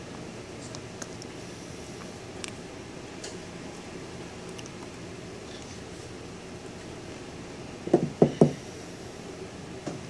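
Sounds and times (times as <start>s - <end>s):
low room hum: 0.0s - 10.0s
dull knocks: 7.9s - 8.6s.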